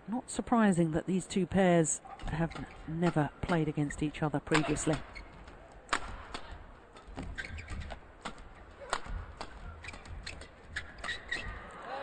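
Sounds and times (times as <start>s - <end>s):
shoes squeaking on court: 2.1s - 11.7s
rackets hitting shuttlecock: 4.5s - 11.6s.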